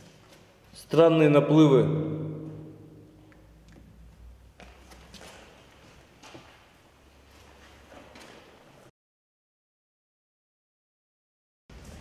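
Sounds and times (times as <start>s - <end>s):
man's voice: 0.8s - 2.6s.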